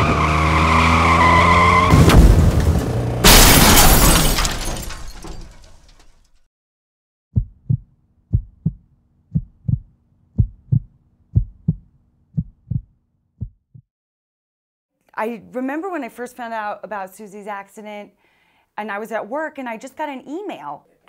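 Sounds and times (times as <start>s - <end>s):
heartbeat thumps: 7.4s - 13.9s.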